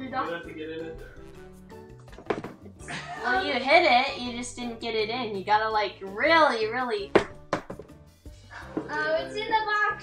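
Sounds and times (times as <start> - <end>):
quiet background music: 0.0 - 10.0
ball knocking on cardboard box: 2.2 - 2.7, 7.1 - 8.0.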